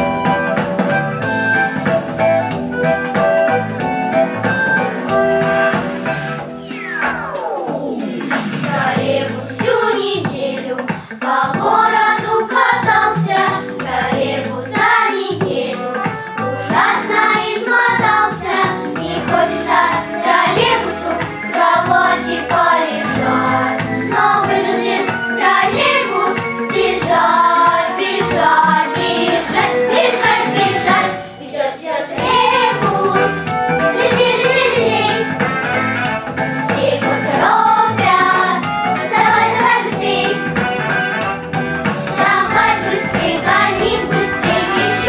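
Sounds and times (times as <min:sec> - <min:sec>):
instrumental backing track: 0:00.0 - 0:45.0
girls singing together: 0:08.7 - 0:16.0, 0:16.6 - 0:35.3, 0:36.7 - 0:40.4, 0:42.2 - 0:45.0.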